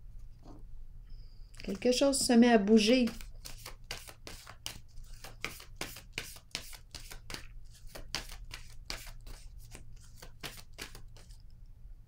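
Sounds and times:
cards being shuffled: 1.6 - 11.4
low steady hum: 11.1 - 12.0.

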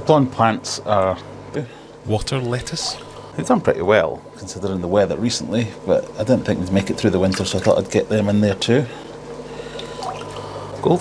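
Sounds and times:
low steady hum: 0.0 - 11.0
aquarium air bubbling: 2.3 - 3.4, 6.8 - 11.0
water trickling: 2.6 - 3.3, 7.0 - 8.6, 9.6 - 10.9.

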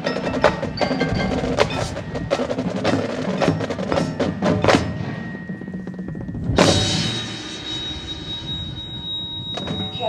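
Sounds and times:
band ringing tail: 0.0 - 10.0.

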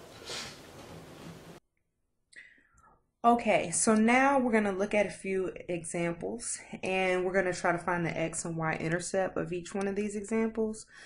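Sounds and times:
faint room noise: 0.0 - 1.6.

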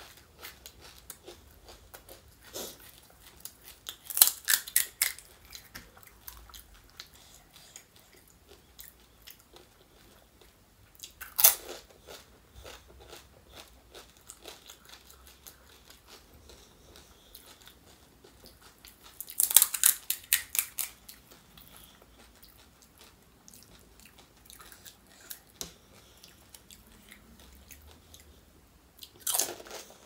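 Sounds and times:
crisp crunch of food: 11.0 - 25.5, 29.0 - 30.0.

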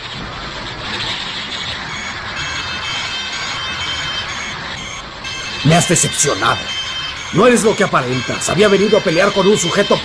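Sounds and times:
faint music tones: 0.0 - 10.0.

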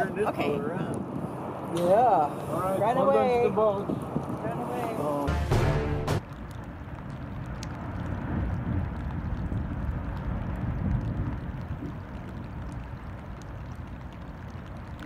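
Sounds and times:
water noise: 0.0 - 15.0
wind: 0.0 - 15.0
low uneven rumble: 0.8 - 15.0.

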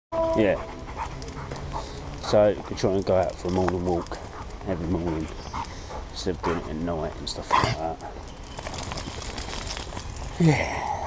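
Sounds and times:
dog panting: 0.3 - 10.3
man speaking: 6.2 - 8.0.

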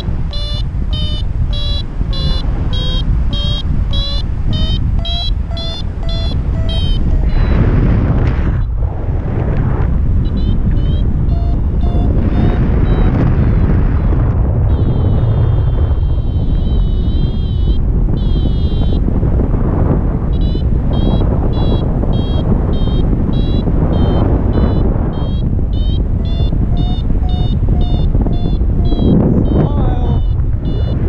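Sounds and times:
variometer high beeps: 0.0 - 7.8, 10.2 - 31.0
wind on microphone: 0.0 - 31.0.

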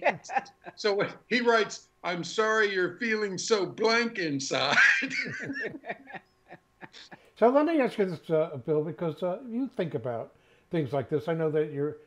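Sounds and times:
man chuckling: 4.6 - 7.3.

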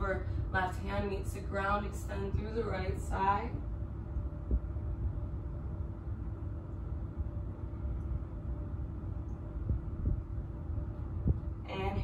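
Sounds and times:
faint hum: 0.0 - 12.0
low room rumble: 0.0 - 12.0.

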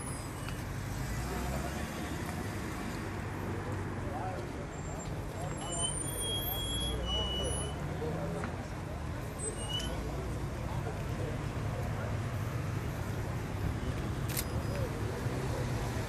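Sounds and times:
road traffic noise: 0.0 - 16.0.

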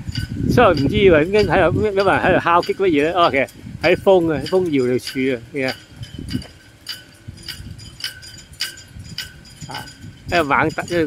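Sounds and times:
ropes clinking on metal flagpoles: 0.0 - 11.0
wind rumble on microphone: 0.0 - 11.0.

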